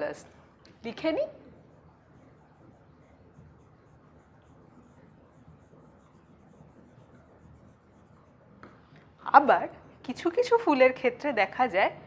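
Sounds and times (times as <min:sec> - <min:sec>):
pen scratching and tapping on screen: 0:01.4 - 0:08.8.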